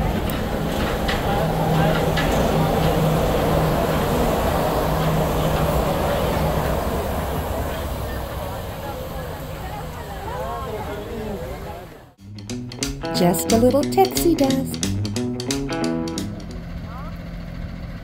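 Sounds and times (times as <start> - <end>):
monorail train humming: 0.0 - 18.0
people's voices: 0.3 - 12.2, 13.2 - 14.8.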